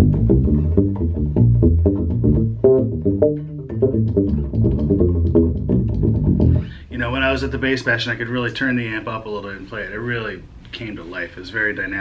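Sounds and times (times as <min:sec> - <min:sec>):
electric bass plucked fingerstyle: 0:00.0 - 0:08.1.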